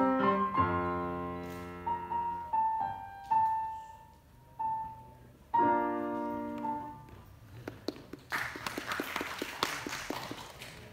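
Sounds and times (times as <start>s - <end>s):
sharp regular claps: 7.5s - 10.9s
audience applause: 7.6s - 10.9s.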